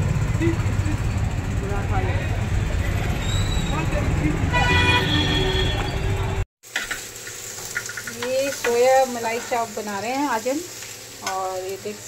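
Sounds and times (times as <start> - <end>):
street traffic rumbling: 0.0 - 6.5
vehicle horn: 4.5 - 6.4
food sizzling in oil: 6.6 - 12.0.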